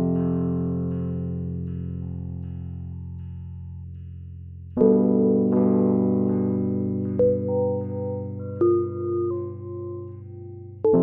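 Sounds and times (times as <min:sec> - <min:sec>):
slow electronic music: 0:04.8 - 0:11.0.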